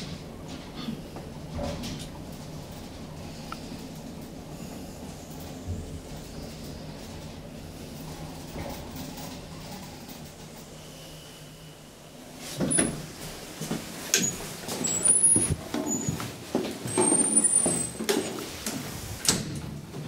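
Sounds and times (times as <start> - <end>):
footsteps: 13.6 - 19.0.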